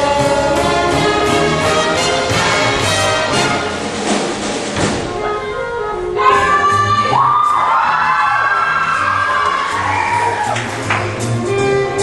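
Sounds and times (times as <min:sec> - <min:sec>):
brass holding long chords: 0:00.0 - 0:07.0
big band playing: 0:00.0 - 0:12.0.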